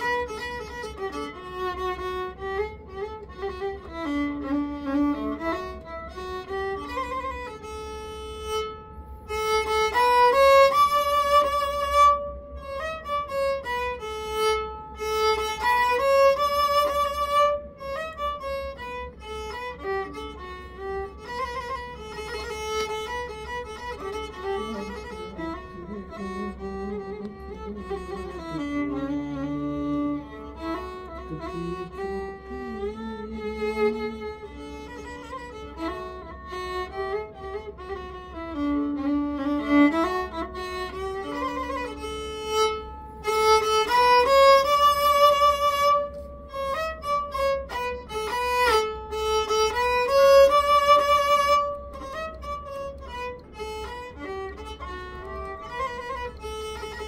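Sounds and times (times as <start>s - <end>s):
faint low hum: 0.0s - 57.0s
solo violin melody: 0.0s - 57.0s.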